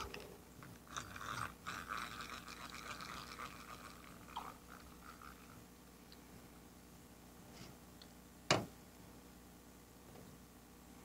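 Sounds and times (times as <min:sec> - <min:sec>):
fishing reel whirring: 0:01.0 - 0:05.6.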